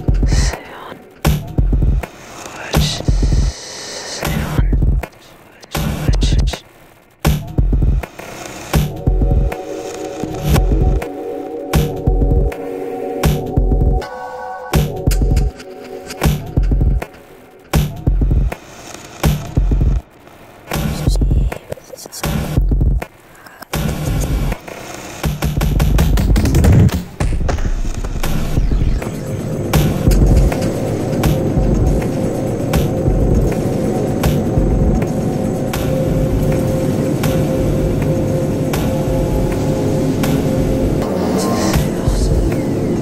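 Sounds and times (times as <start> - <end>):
electronic music: 0.0 - 6.6, 7.3 - 20.1, 25.8 - 43.0.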